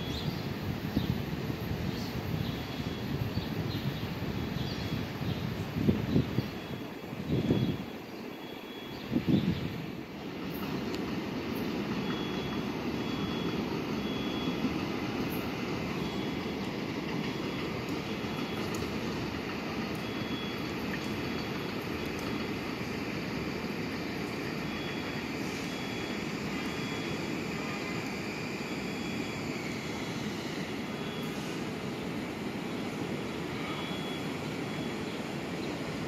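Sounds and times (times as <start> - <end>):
electric train wheels rumbling: 0.0 - 36.0
train rushes: 0.0 - 36.0
faint high tone: 33.5 - 35.1.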